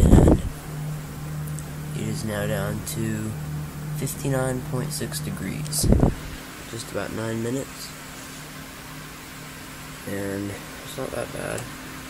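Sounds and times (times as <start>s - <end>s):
cooling fans whirring: 0.0s - 12.0s
low two-tone hum: 0.0s - 12.0s.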